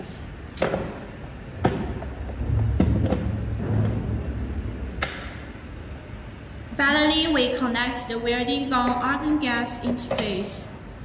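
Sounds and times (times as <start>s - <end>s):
low rubbing handling noise: 0.0s - 6.7s.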